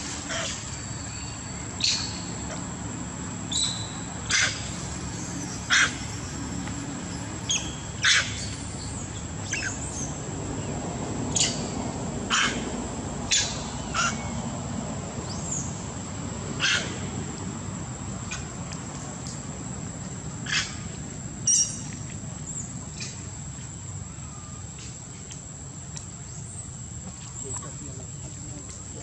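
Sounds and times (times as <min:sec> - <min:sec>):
high sharp animal calls: 0:13.3 - 0:14.3, 0:16.6 - 0:17.0.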